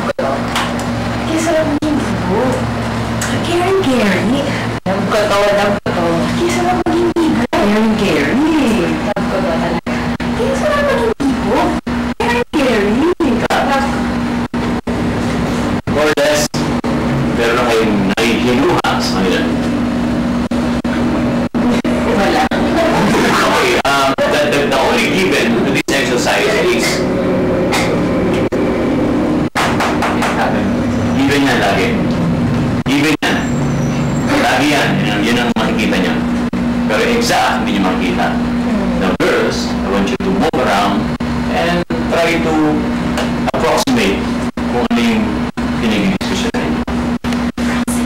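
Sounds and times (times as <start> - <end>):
low hum: 0.0 - 48.0
voices talking: 0.0 - 48.0
muffled person speaking: 21.6 - 28.6.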